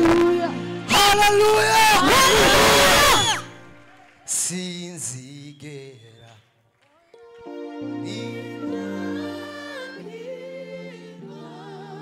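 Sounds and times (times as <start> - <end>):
loud vocal outburst: 0.9 - 3.5
sustained keyboard chords: 7.2 - 12.0
man singing with vibrato: 8.0 - 9.0.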